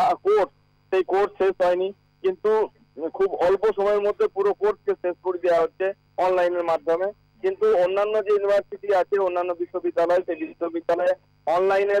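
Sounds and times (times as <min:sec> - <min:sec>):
faint low hum: 0:00.0 - 0:12.0
person talking: 0:00.0 - 0:12.0.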